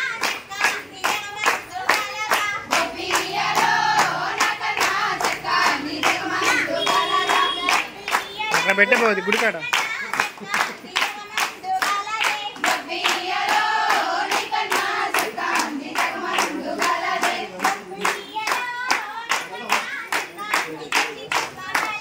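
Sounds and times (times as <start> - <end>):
hands clapping in steady beat: 0.0 - 22.0
women singing together: 0.0 - 22.0.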